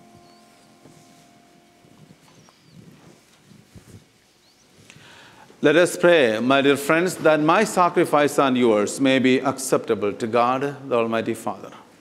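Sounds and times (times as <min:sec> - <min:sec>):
faint rustles: 0:00.0 - 0:05.6.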